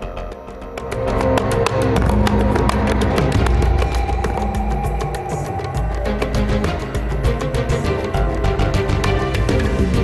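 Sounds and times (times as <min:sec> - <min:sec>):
program music with sustained notes: 0:00.0 - 0:10.0.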